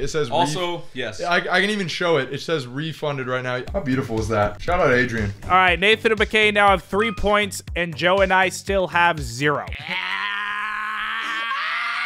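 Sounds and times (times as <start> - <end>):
person yelling: 9.7 - 12.0.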